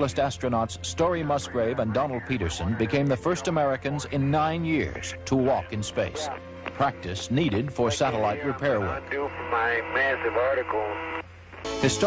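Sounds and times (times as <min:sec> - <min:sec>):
voice over radio link: 0:01.2 - 0:07.0, 0:07.8 - 0:11.2.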